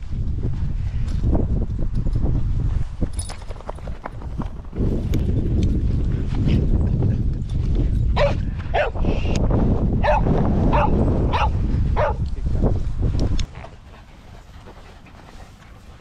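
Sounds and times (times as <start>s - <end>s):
dog barking: 8.2s - 9.0s, 10.0s - 12.2s.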